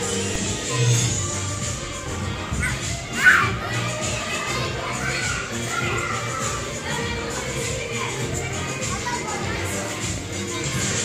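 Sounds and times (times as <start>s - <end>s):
background music: 0.0s - 11.0s
children shouting and playing: 0.0s - 11.0s.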